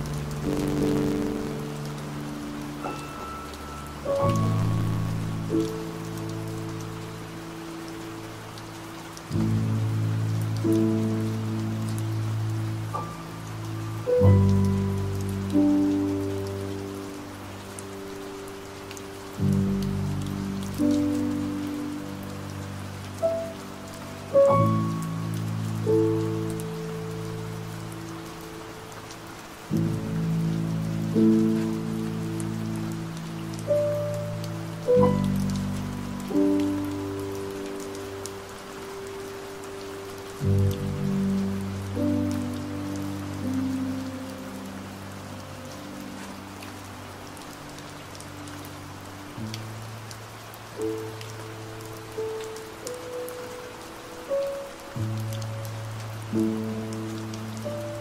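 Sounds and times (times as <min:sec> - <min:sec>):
soft piano chords: 0:00.0 - 0:58.0
steady rain: 0:00.0 - 0:58.0.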